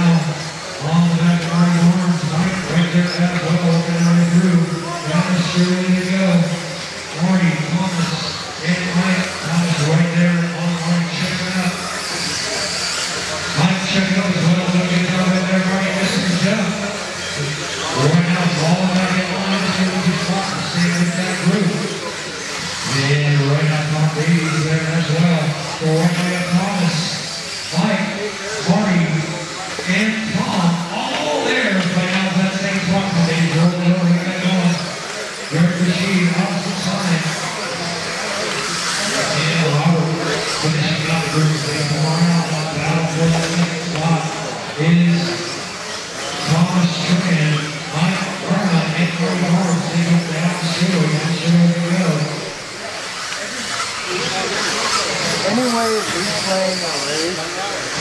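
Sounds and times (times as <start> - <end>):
announcer over echoing pa: 0.0 - 38.2
rc car motors and tyres: 0.0 - 58.0.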